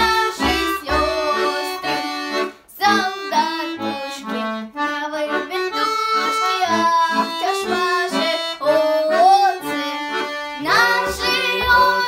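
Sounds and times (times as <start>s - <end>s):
button accordion folk song: 0.0s - 12.0s
child singing: 0.0s - 12.0s.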